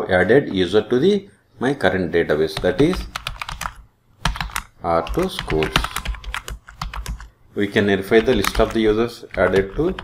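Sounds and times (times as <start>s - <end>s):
keyboard typing: 2.5s - 7.3s, 8.0s - 10.0s.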